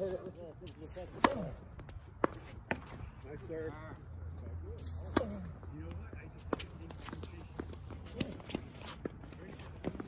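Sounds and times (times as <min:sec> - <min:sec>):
paddles hitting ball: 0:01.2 - 0:03.0
footsteps shuffling on hard court: 0:04.8 - 0:10.0.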